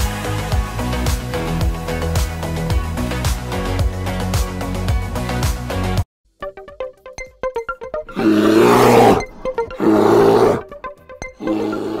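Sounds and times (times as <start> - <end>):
loud animal roars: 8.1 - 10.6, 11.4 - 12.0.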